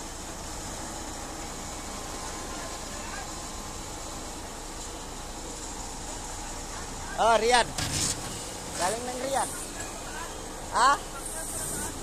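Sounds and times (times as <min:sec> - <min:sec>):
low rumble of vehicles: 0:00.0 - 0:12.0.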